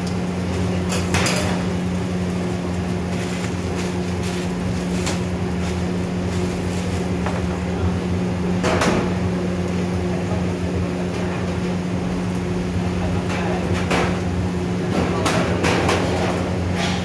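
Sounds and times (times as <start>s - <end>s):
mechanical hum with droning tone: 0.0s - 17.0s.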